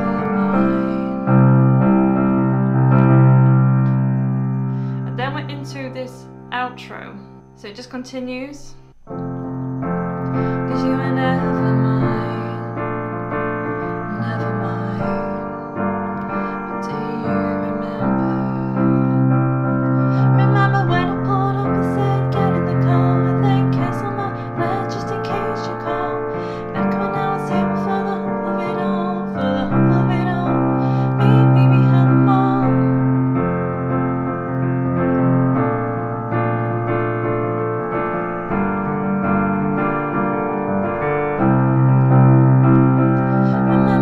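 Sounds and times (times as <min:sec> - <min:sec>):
person singing: 0:00.0 - 0:01.4, 0:10.3 - 0:13.1, 0:13.7 - 0:19.3, 0:20.0 - 0:33.0, 0:43.5 - 0:44.0
piano chords: 0:00.0 - 0:44.0.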